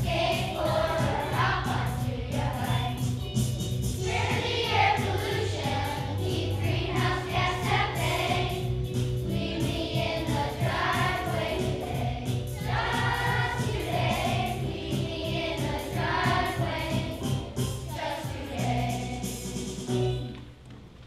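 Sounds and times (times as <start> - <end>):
children's choir singing: 0.0 - 3.2, 4.0 - 19.9
instrumental accompaniment: 0.0 - 21.0.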